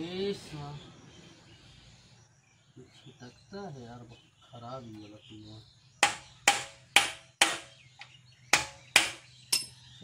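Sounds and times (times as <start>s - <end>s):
hammer striking metal: 6.0s - 7.8s, 8.5s - 9.8s.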